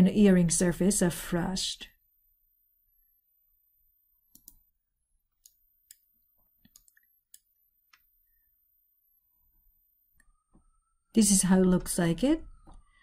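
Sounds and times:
faint mouse clicks: 0:04.3 - 0:04.6, 0:06.6 - 0:08.1.

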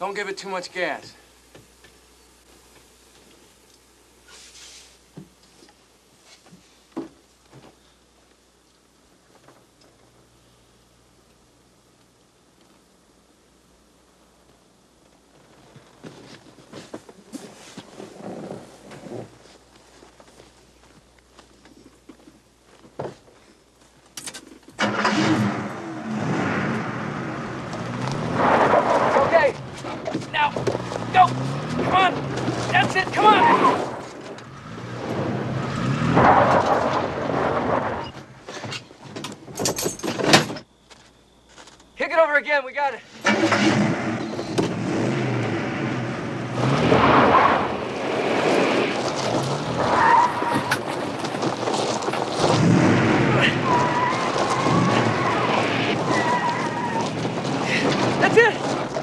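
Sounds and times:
truck engine revving: 0:24.8 - 0:38.2, 0:43.2 - 0:50.9, 0:52.5 - 0:59.0
wheels spinning: 0:43.2 - 0:59.0.

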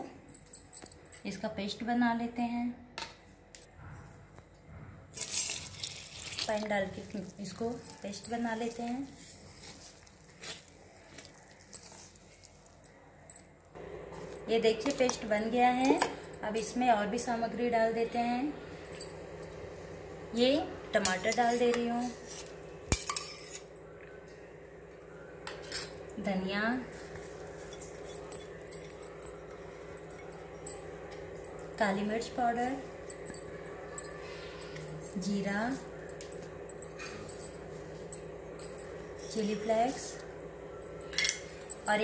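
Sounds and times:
spoon stirring wet paste: 0:05.2 - 0:12.9
steady low hum: 0:06.5 - 0:42.0
steel bowls clinking: 0:21.0 - 0:23.9, 0:26.9 - 0:42.0.

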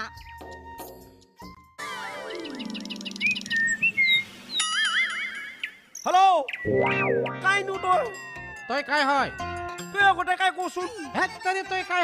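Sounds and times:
chirpy whistles: 0:02.5 - 0:06.7
warbling electronic jingle: 0:06.7 - 0:08.5.

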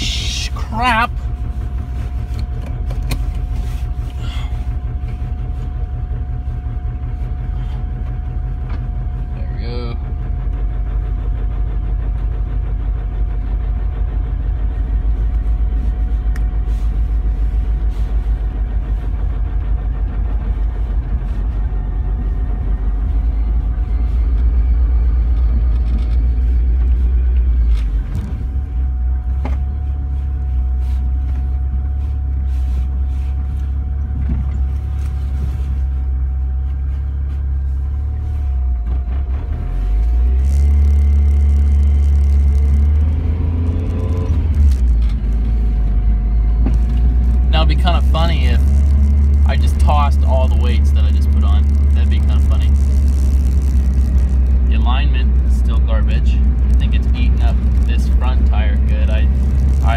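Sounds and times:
engine and road rumble: 0:00.0 - 0:59.9
faint steady whine: 0:00.0 - 0:59.9.

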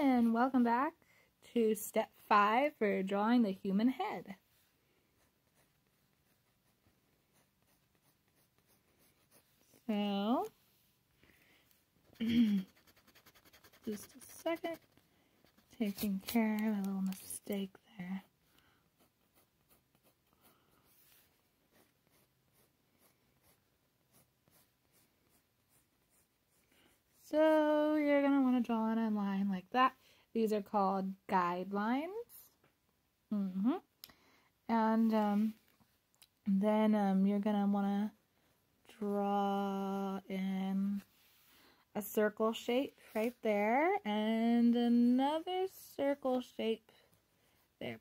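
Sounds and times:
pencil scratching on paper: 0:05.0 - 0:10.5, 0:12.0 - 0:27.2.

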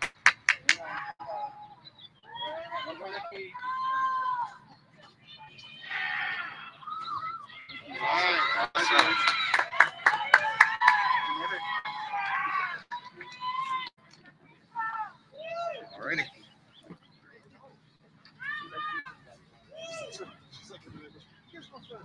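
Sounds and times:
crowd shouting back: 0:02.2 - 0:04.6, 0:05.4 - 0:13.9.

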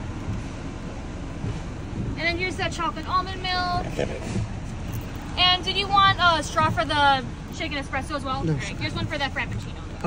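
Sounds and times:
car idling: 0:00.0 - 0:10.0.

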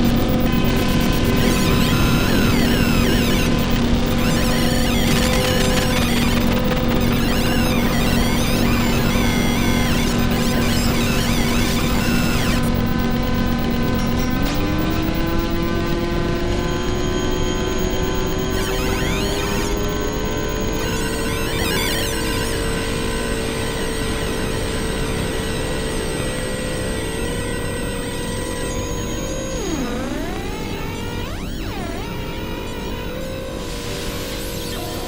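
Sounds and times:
warbling high synth tones: 0:00.0 - 0:22.9, 0:28.4 - 0:35.0
low synth drone: 0:00.0 - 0:25.1.

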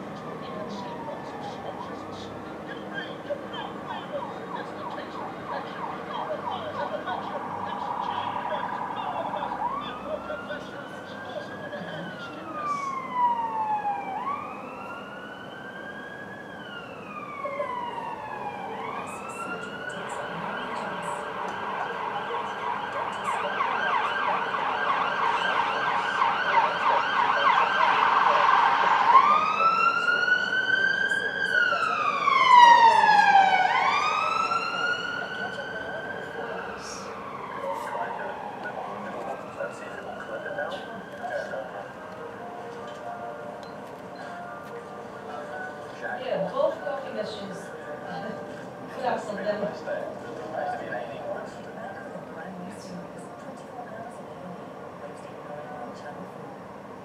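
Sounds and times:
emergency siren yelp and wail: 0:00.0 - 0:54.4.

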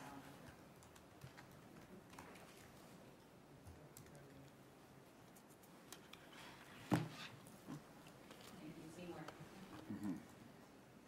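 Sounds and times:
laptop keyboard typing: 0:00.4 - 0:02.7, 0:03.7 - 0:04.6.

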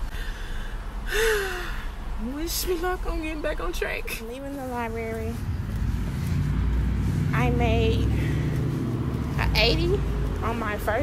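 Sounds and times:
low rumble: 0:00.0 - 0:11.0
woman sighing: 0:01.0 - 0:02.0.

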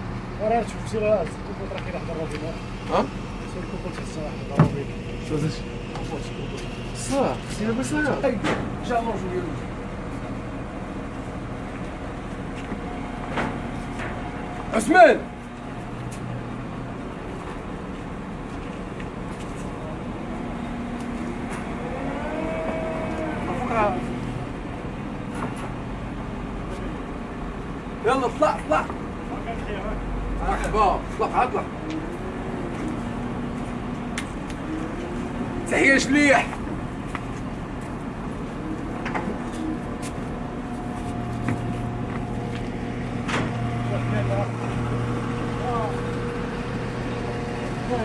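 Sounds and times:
crane engine whining: 0:00.0 - 0:48.0.

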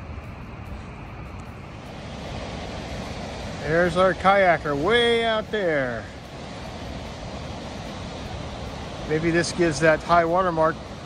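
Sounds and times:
outdoor rushing noise: 0:00.0 - 0:11.0
wind rumbling on microphone: 0:00.0 - 0:11.0.

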